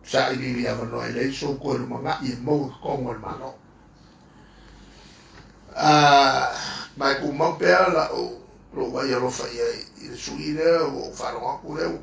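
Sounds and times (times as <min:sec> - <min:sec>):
faint background hiss: 0:00.0 - 0:12.0.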